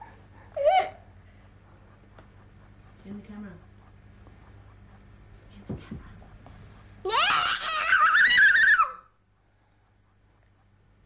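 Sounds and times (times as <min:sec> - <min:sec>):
girl squealing: 0:07.1 - 0:09.1.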